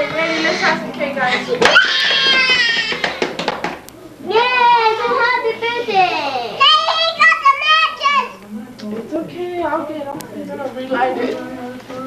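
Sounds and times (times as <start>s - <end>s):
toddler squealing: 0.0s - 3.2s.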